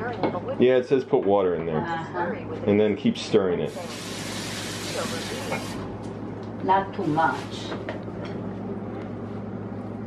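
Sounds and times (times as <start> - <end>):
faucet water filling a mug: 3.7 - 5.8.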